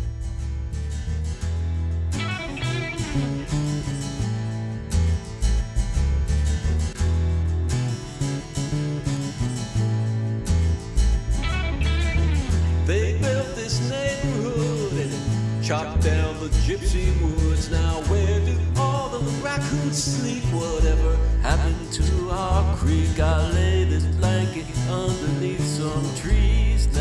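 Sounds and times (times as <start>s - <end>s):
bass notes: 0.0s - 27.0s
country guitar: 0.0s - 27.0s.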